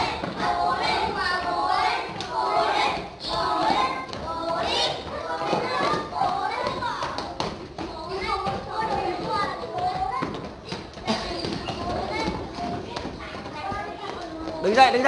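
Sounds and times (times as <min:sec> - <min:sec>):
children shouting and cheering: 0:00.0 - 0:15.0.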